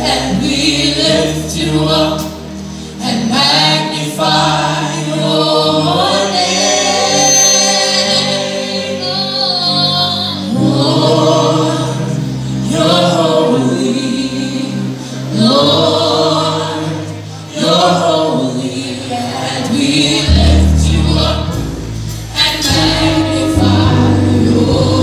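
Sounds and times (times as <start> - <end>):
choir singing gospel: 0.0 - 25.0
keyboard sustained low notes: 4.2 - 25.0.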